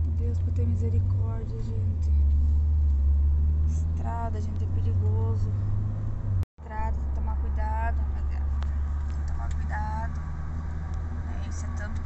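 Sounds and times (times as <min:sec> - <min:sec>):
car road and engine noise: 0:00.0 - 0:12.0.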